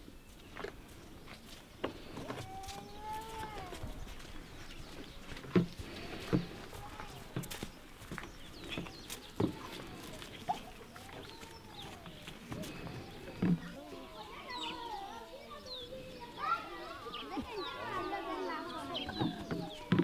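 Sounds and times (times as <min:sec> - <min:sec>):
farm animal call: 0:02.1 - 0:04.2.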